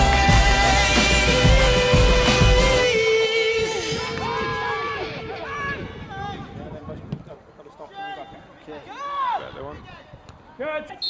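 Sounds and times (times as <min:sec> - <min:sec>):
backing music: 0:00.0 - 0:05.4.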